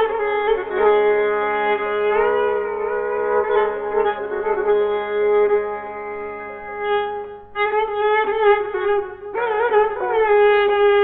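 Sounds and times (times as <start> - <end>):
santur tremolo melody: 0.0 - 11.0.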